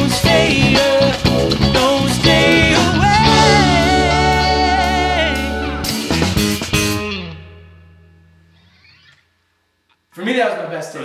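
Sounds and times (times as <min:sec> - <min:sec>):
guitar and bass chord ringing: 0:01.2 - 0:08.6
drum hits: 0:02.2 - 0:05.0.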